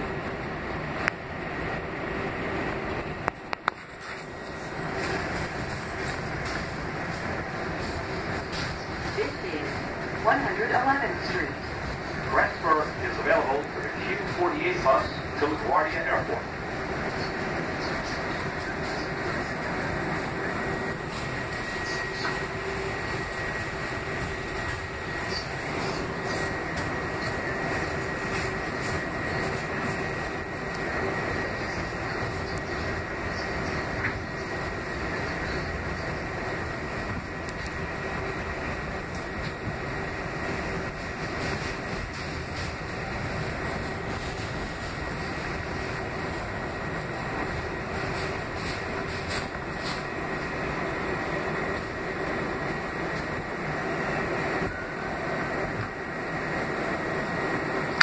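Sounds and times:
train wheel and running noise: 0:00.0 - 0:58.0
thin high whine: 0:03.9 - 0:58.0.

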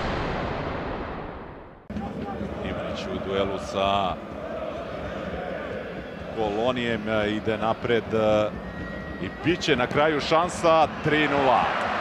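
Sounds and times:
deep boom sound effect: 0:00.0 - 0:02.0
stadium crowd noise: 0:01.9 - 0:12.0.

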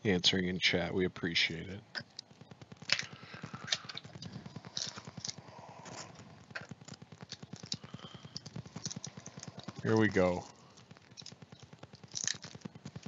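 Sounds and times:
plastic wrap crinkling: 0:02.0 - 0:13.0.

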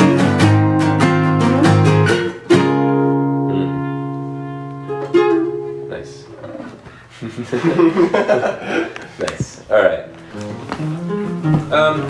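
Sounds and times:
acoustic guitar notes: 0:00.0 - 0:06.9, 0:09.7 - 0:12.0.

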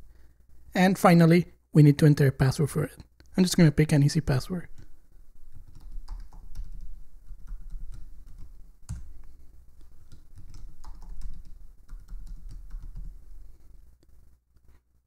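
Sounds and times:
typing on keyboard: 0:04.7 - 0:09.2, 0:09.8 - 0:13.2.

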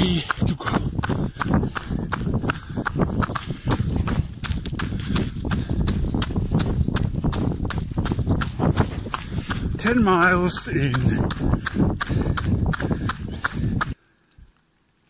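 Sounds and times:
footsteps on wet road: 0:00.0 - 0:14.0.

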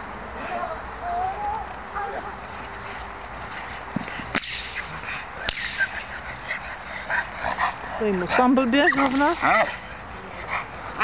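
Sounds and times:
whip cracks: 0:04.0 - 0:06.0.

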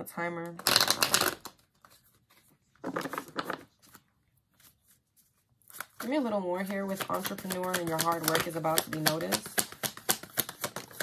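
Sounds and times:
cards being shuffled: 0:00.6 - 0:11.0.

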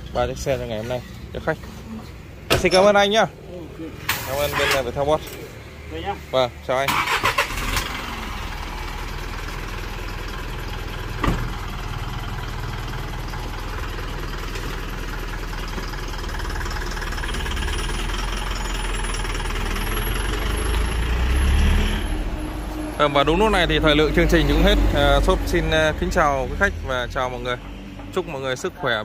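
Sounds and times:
truck driving past: 0:03.7 - 0:29.0
diesel truck engine idling: 0:04.8 - 0:29.0.

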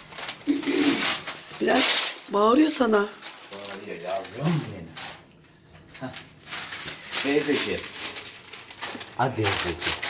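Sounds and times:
baking paper rustling: 0:00.0 - 0:10.0.

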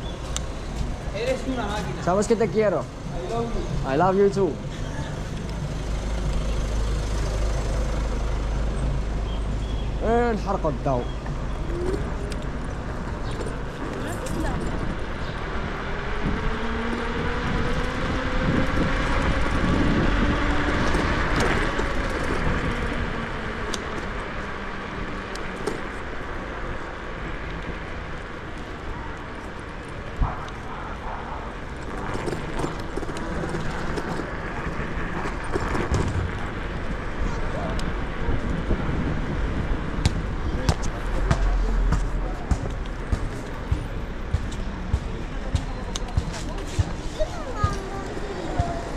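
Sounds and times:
wind and tyres on paving: 0:00.0 - 0:48.9.

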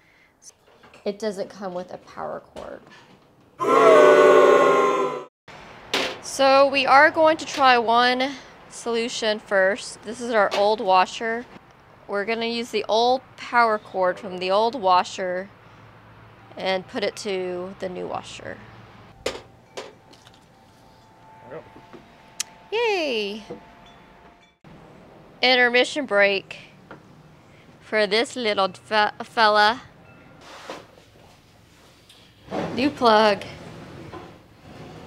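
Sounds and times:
dramatic held chord sting: 0:03.6 - 0:05.3.

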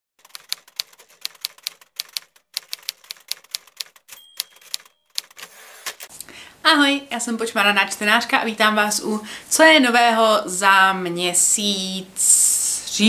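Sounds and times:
typewriter keys clacking: 0:00.2 - 0:06.1
typewriter carriage sliding: 0:02.0 - 0:06.1
typewriter bell ringing: 0:03.3 - 0:05.6.

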